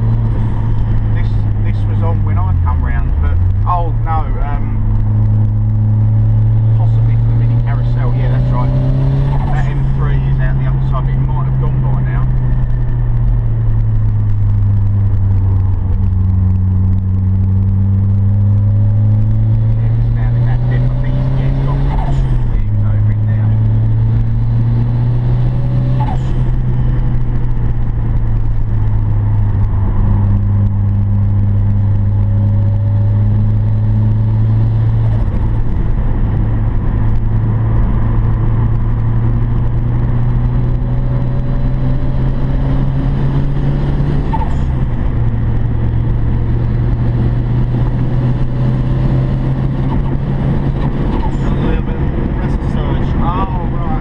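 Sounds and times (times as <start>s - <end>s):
car engine under load: 0.0s - 54.0s.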